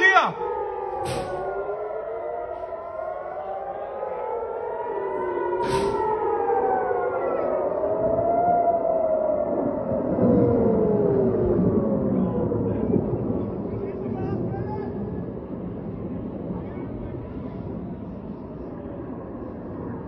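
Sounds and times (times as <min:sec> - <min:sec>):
air-raid sirens wailing: 0:00.0 - 0:20.0.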